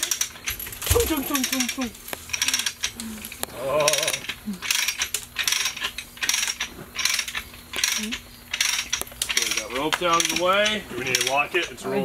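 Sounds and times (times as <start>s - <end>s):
ratchet clicking: 0.0s - 11.8s.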